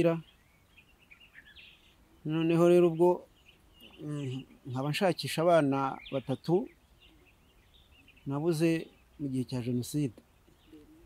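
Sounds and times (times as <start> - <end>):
man talking: 0.0 - 0.2, 2.3 - 3.3, 4.0 - 6.7, 8.2 - 10.2
faint bird chirps: 0.0 - 11.0.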